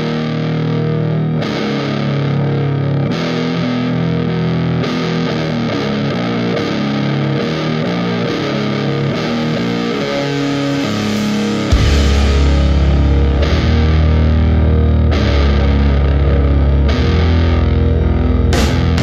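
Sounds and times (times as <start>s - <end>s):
doom metal distorted guitars: 0.0s - 19.0s.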